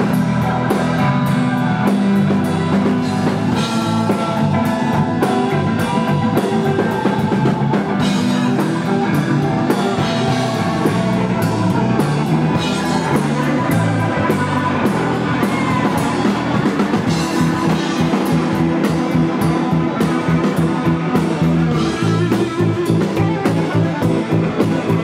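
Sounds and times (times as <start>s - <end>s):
drum kit: 0.0s - 25.0s
electric bass: 0.0s - 25.0s
electric guitar with bent notes: 0.0s - 25.0s.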